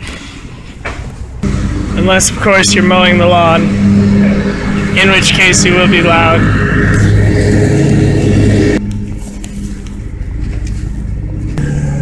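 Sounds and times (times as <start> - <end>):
lawn mower engine running: 1.4 - 9.4.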